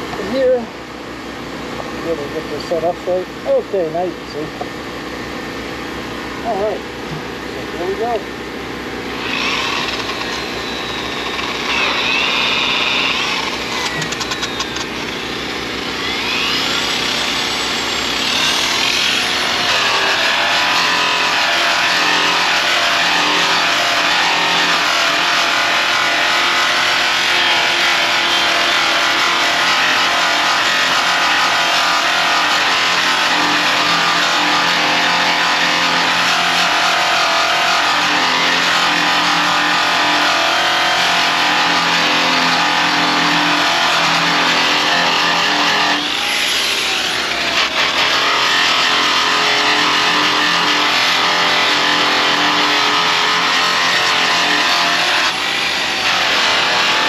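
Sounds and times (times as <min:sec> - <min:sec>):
power buffer whirring grind: 0:00.0 - 0:57.0.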